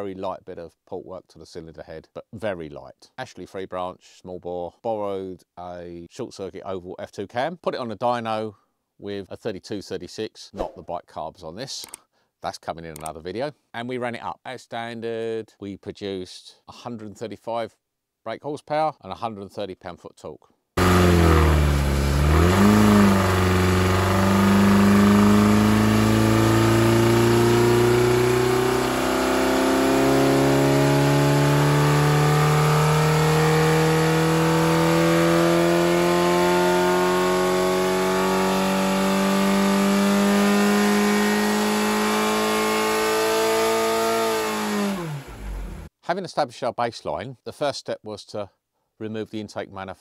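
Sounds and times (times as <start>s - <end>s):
engine revving under load: 20.8s - 45.9s.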